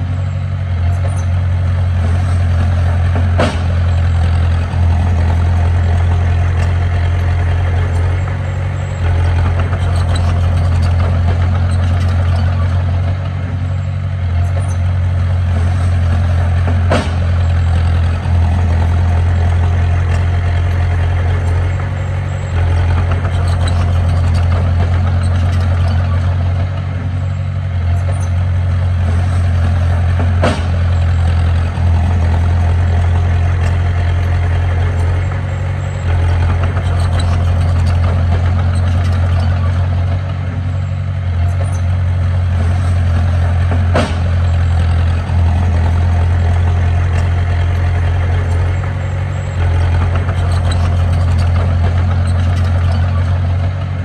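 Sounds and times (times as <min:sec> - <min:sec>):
diesel engines running: 0:00.0 - 0:54.0
truck tipping soil and rock: 0:00.2 - 0:54.0.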